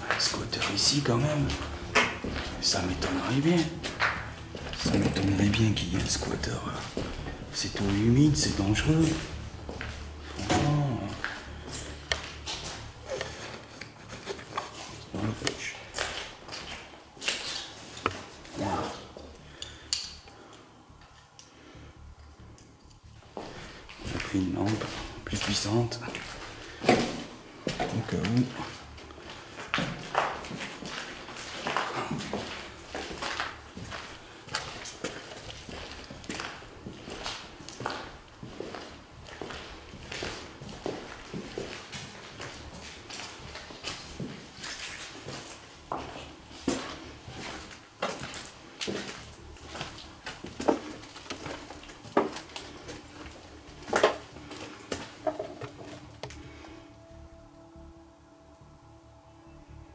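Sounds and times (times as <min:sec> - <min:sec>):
footsteps crunching over rubble: 0:00.0 - 0:19.6, 0:23.2 - 0:56.4.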